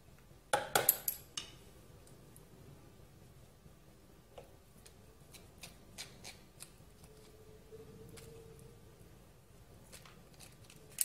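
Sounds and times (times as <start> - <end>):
knife scraping crab shell: 5.3 - 7.4.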